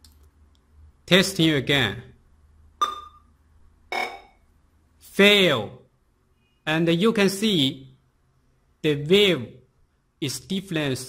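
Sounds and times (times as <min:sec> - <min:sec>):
ringing electronic tone: 0:02.8 - 0:03.2, 0:03.9 - 0:04.4
tester clicks: 0:02.8 - 0:03.2.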